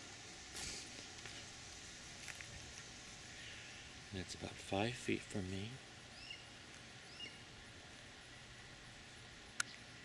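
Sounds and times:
faint outdoor hiss: 0:00.0 - 0:10.0
small soft clicks: 0:09.6 - 0:09.8.

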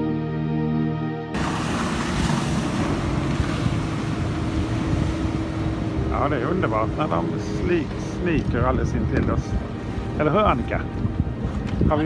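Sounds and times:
music: 0:00.0 - 0:01.4, 0:06.1 - 0:12.0
water splashing: 0:01.4 - 0:12.0
wind buffeting microphone: 0:01.4 - 0:12.0
wind rushing: 0:01.4 - 0:12.0.

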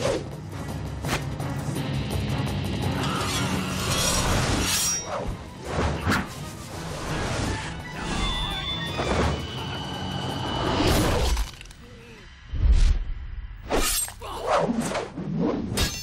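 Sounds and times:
dramatic music: 0:00.0 - 0:13.7.

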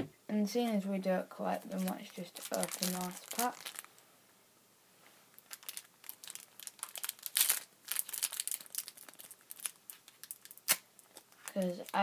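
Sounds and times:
wrapper crinkling as torn open: 0:01.7 - 0:04.0, 0:05.3 - 0:12.0.

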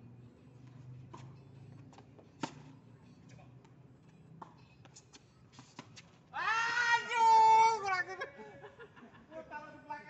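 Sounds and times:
tennis balls being hit: 0:02.4 - 0:02.8.

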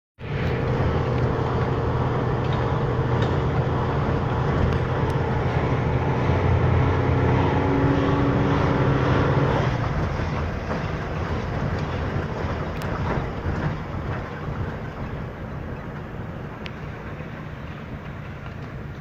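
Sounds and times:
car engine hum and road noise: 0:00.2 - 0:13.3.

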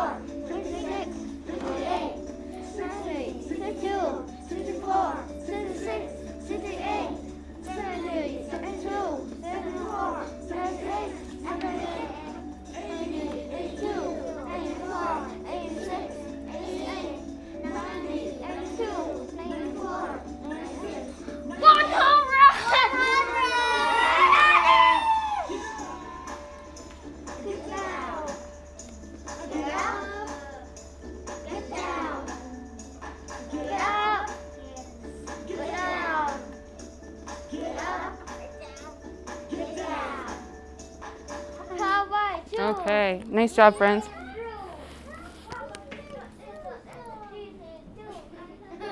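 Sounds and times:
children chattering: 0:00.0 - 0:01.1, 0:07.8 - 0:24.5, 0:43.4 - 0:48.9
children chanting numbers: 0:00.0 - 0:28.6, 0:29.2 - 0:36.7, 0:37.3 - 0:40.5.

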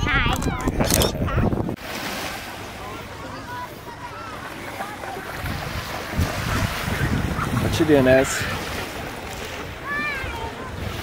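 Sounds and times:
wind gust on microphone: 0:00.0 - 0:01.8, 0:05.3 - 0:11.0
small waves washing on shore: 0:01.7 - 0:11.0
faint distant voices: 0:02.4 - 0:11.0.

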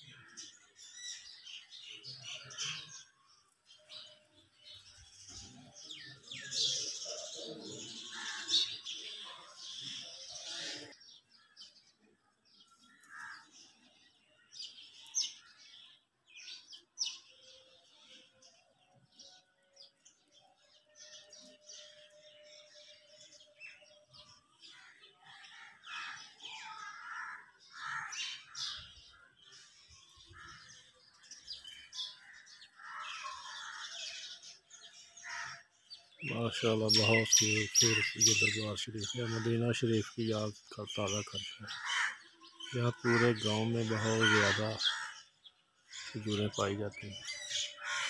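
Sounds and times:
birds chirping: 0:00.0 - 0:48.0.

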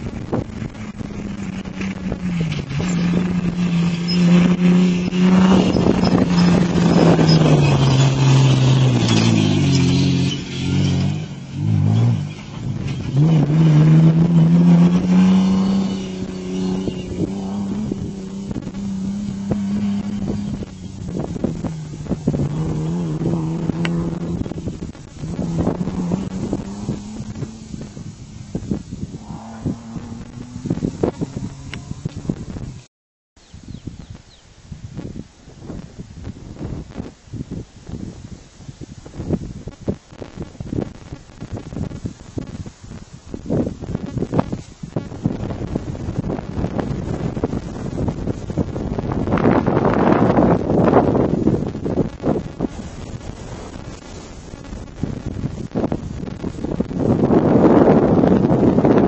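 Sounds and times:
car engine revving hard: 0:00.3 - 0:32.6.

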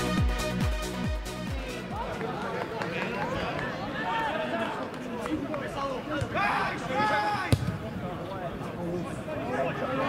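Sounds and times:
players shouting: 0:05.7 - 0:07.8
football being kicked: 0:07.5 - 0:07.8.

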